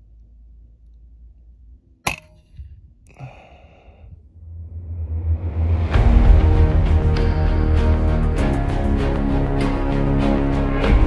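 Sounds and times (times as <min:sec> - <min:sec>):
music: 0:05.2 - 0:11.0.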